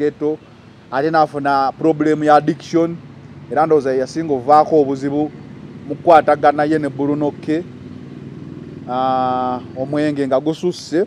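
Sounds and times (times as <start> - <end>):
low engine hum: 0.0 - 11.0
man's voice: 8.9 - 11.0.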